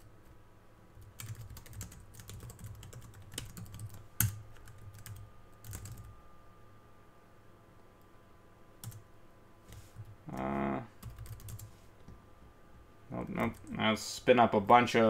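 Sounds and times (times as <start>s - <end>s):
computer keyboard typing: 1.0s - 6.1s, 8.8s - 9.0s, 11.0s - 11.7s.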